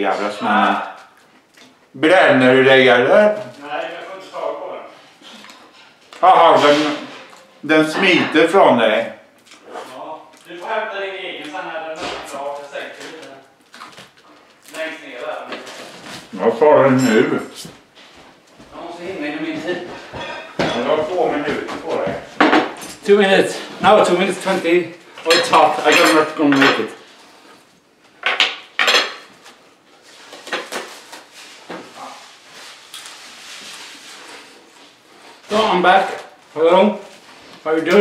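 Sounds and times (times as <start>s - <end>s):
cutlery clinking on plate: 20.0s - 21.1s, 25.2s - 26.9s.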